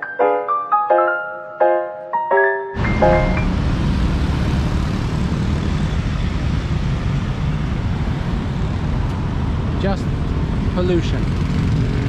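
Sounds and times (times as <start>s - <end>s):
road traffic rumble: 2.8s - 12.0s.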